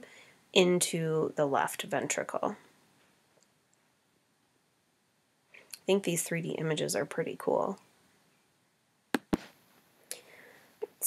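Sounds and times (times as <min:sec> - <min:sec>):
faint breath: 0:00.0 - 0:00.5, 0:10.1 - 0:10.8.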